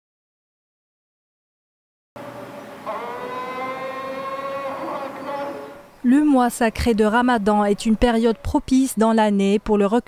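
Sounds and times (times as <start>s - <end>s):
call to prayer sung note: 2.8s - 5.9s.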